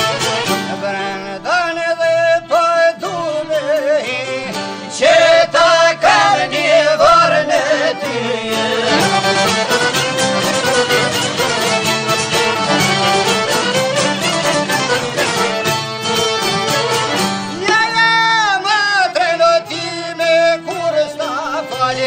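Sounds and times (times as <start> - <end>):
folk instrumental over steady beat: 0.0 - 22.0.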